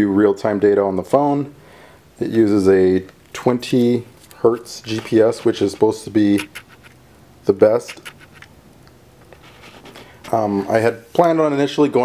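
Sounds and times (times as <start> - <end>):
background hiss: 0.0 - 12.0
faint scratchy rustling: 3.2 - 8.6, 9.2 - 11.5.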